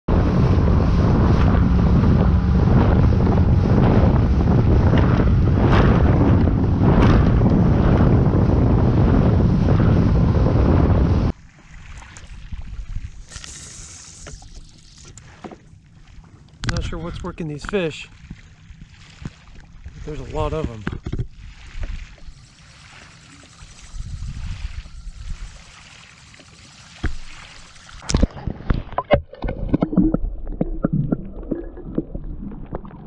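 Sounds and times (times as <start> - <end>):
wind on microphone: 0.1 - 11.4, 18.7 - 25.8
outboard motor running: 0.1 - 30.0
faint water sounds: 11.3 - 33.0
small knocks of boat: 15.3 - 15.8, 20.4 - 21.9
rushing water and spray: 19.0 - 29.0.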